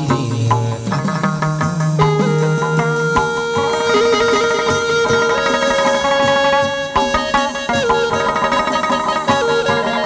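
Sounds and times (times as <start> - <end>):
light percussion strokes: 0.0 - 10.0
plucked lute melody: 0.0 - 10.0
held stepping notes: 2.0 - 10.0.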